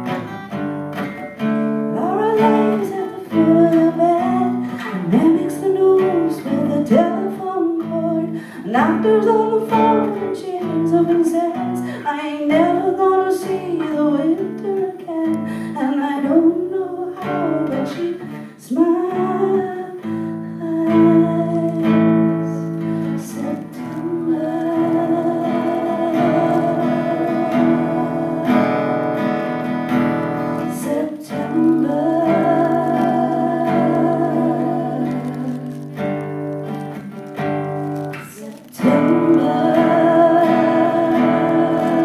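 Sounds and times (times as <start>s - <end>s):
acoustic guitar strummed: 0.0s - 42.0s
woman singing: 1.7s - 37.0s, 37.8s - 42.0s.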